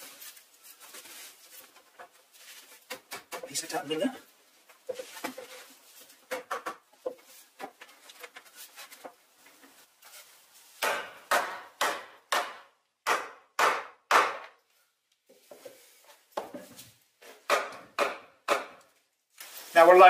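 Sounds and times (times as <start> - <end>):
mallet striking wood poles: 10.8 - 14.6, 17.3 - 18.9.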